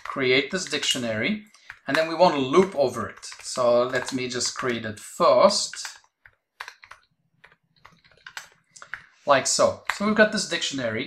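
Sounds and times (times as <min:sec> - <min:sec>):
faint keyboard typing: 0:00.0 - 0:11.0.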